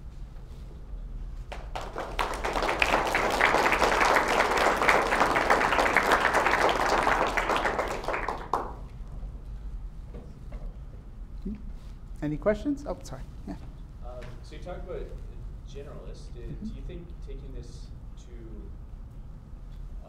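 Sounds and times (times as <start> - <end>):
audience applauding: 1.5 - 8.9.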